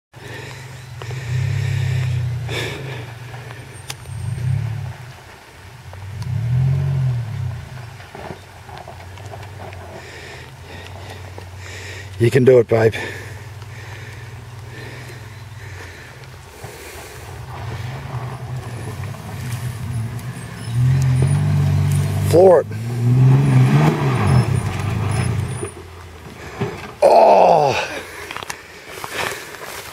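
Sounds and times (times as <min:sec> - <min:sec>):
distant engine revving: 0:00.2 - 0:05.2, 0:06.0 - 0:12.2, 0:12.8 - 0:27.0.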